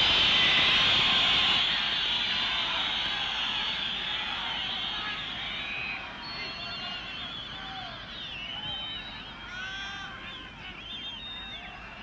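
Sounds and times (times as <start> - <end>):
stadium crowd: 0.0 - 12.0
whistles and horns: 0.0 - 12.0.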